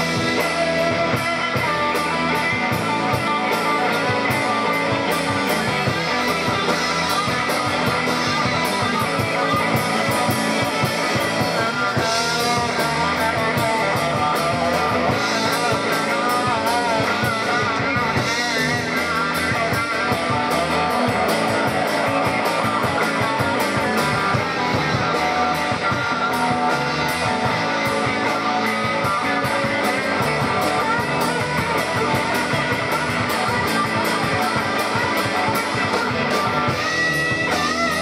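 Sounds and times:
drum kit steady beat: 0.0s - 38.0s
electric guitars: 0.0s - 38.0s
lead guitar with wavering notes: 0.0s - 38.0s.

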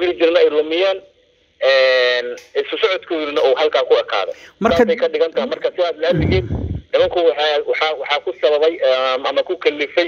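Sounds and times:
person talking: 4.3s - 7.2s.

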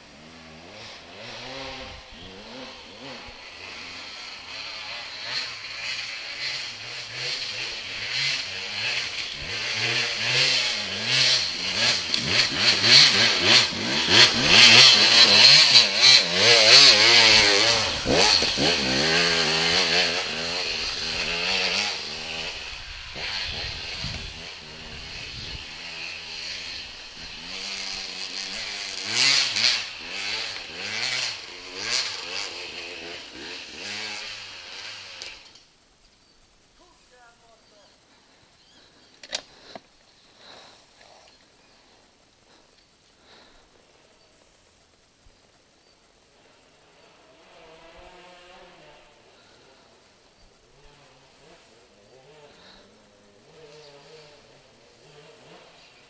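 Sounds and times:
dirt bike engine revving: 0.0s - 36.9s, 37.5s - 45.0s, 46.1s - 56.0s.

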